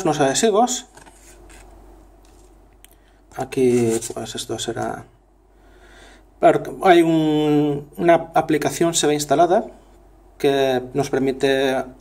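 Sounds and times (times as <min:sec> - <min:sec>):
paper rustling: 0:00.9 - 0:02.6, 0:03.6 - 0:04.4.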